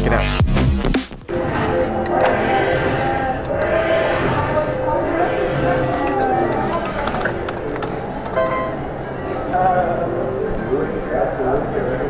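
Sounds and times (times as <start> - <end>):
faint clicks: 2.0 - 4.6, 5.6 - 9.6
slot machine tones and jingles: 6.9 - 9.2.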